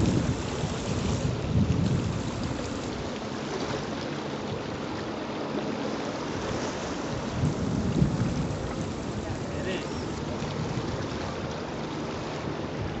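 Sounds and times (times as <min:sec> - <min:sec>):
wind rumbling on microphone: 0:00.0 - 0:03.8, 0:06.2 - 0:11.8, 0:12.4 - 0:13.0
sea water washing around rocks: 0:00.0 - 0:05.2, 0:05.9 - 0:13.0.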